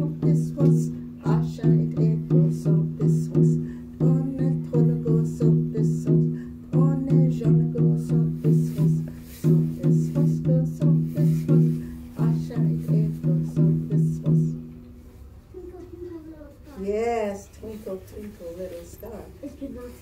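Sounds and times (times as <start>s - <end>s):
woman singing: 0.0s - 14.6s
frame drum beat: 0.0s - 14.8s.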